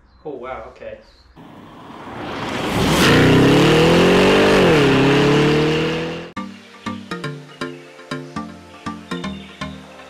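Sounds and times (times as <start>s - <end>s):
car engine revving: 1.4s - 6.4s
rising rush: 1.4s - 6.4s.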